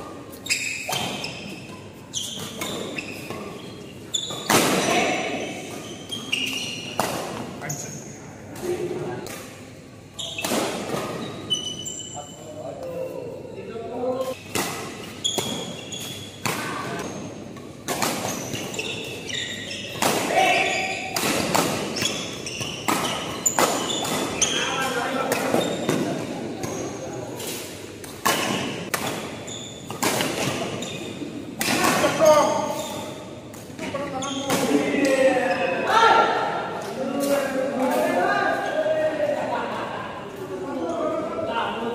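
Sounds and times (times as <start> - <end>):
court shoes squeaking: 0.0 - 13.2, 14.1 - 38.9
badminton rackets hitting shuttlecock: 14.3 - 19.2, 19.9 - 26.1, 27.5 - 32.2
players' voices: 18.7 - 28.9, 30.1 - 41.9.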